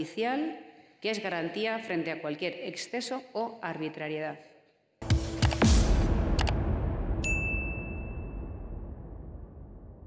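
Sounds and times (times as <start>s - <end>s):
outro music: 5.0s - 10.0s
notification bell ding: 7.2s - 8.5s.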